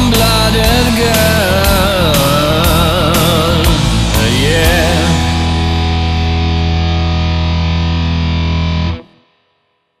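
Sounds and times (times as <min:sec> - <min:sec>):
low bass notes: 0:00.0 - 0:09.2
distorted electric guitar chord: 0:00.0 - 0:10.0.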